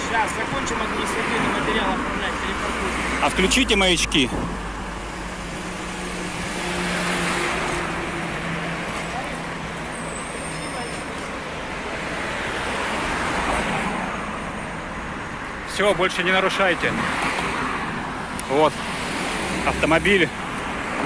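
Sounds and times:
road traffic passing: 0.0s - 21.0s.

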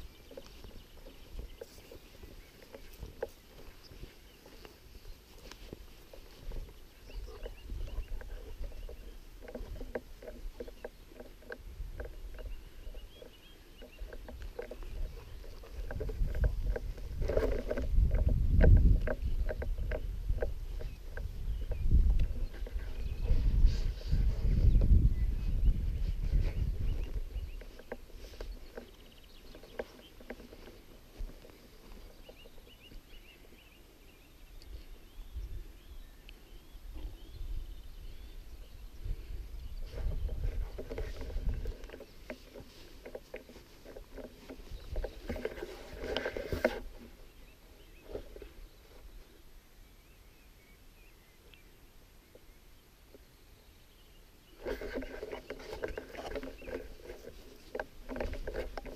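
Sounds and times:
footsteps through grass: 0.0s - 33.9s
grass rustling: 0.0s - 58.9s.

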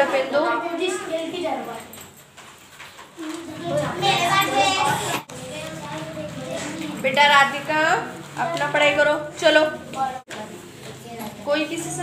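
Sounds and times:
children talking: 0.0s - 2.1s, 3.0s - 12.0s.

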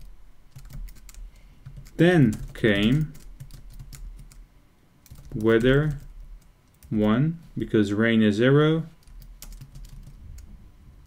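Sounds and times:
computer keyboard typing: 0.0s - 4.4s, 5.0s - 7.0s, 9.0s - 10.5s.

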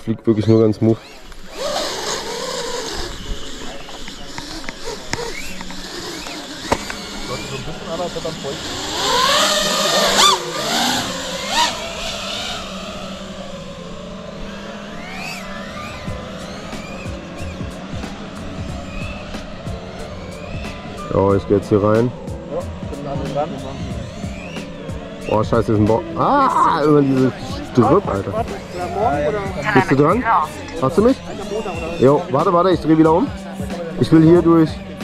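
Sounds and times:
quadcopter motors whining: 0.0s - 35.0s.

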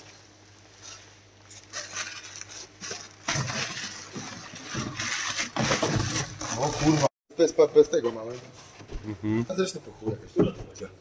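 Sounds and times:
bubble wrap rustling and crinkling: 0.0s - 7.1s.

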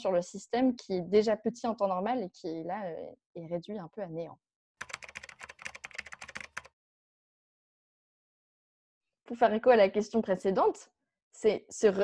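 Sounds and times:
rapid keyboard typing: 4.8s - 6.7s.

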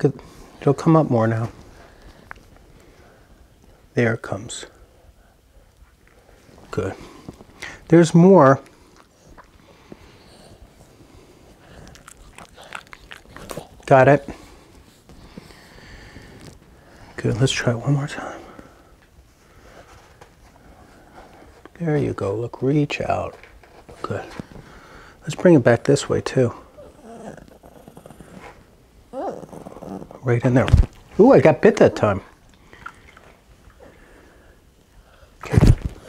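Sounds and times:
small dog growling: 11.6s - 13.9s, 26.6s - 30.3s.

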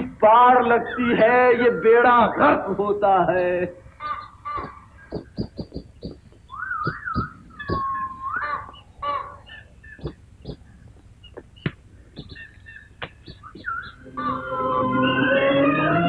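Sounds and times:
birds chirping: 0.0s - 16.0s
wavering whistled bird calls: 3.4s - 16.0s
scattered clicks: 4.6s - 8.0s, 10.0s - 14.0s.

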